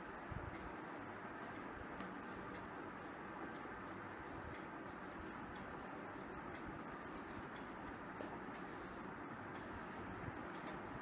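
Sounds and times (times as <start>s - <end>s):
faint room noise: 0.0s - 11.0s
light ticks: 0.5s - 11.0s.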